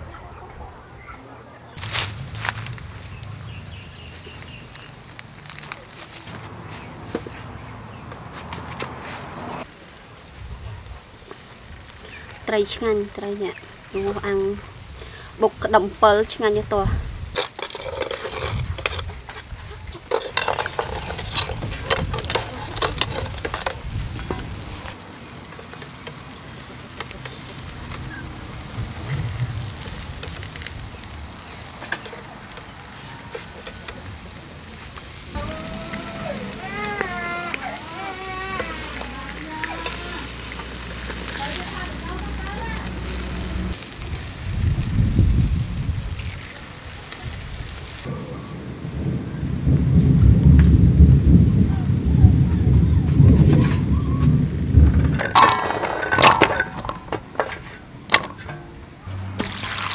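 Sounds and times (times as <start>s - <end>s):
fish sizzling over charcoal: 1.8s - 7.3s, 8.6s - 59.9s
deep rumbles: 1.8s - 8.3s, 8.9s - 25.0s, 27.5s - 32.9s, 47.3s - 59.4s.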